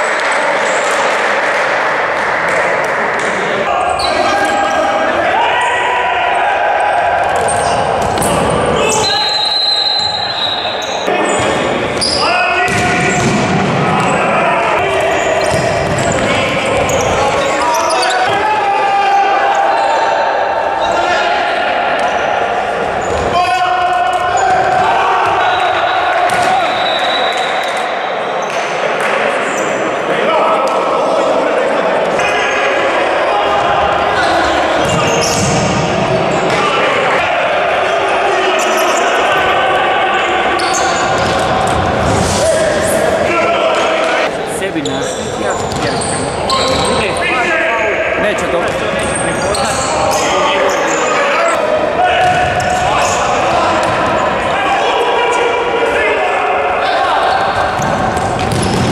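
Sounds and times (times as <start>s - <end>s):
players shouting echoing: 0.0s - 58.9s
ball kicked and bouncing on court: 12.7s - 14.2s, 57.6s - 58.9s.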